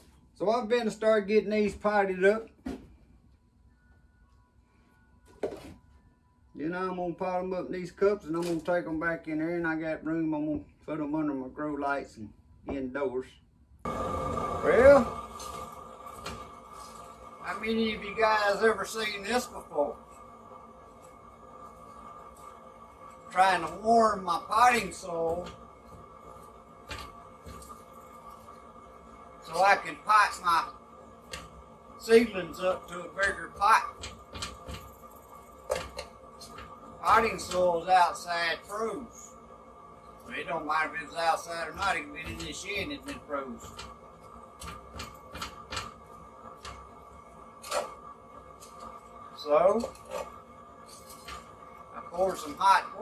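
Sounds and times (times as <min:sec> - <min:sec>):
faint steady hum: 0:00.0 - 0:53.0
metal utensil scraping in pot: 0:49.8 - 0:51.5.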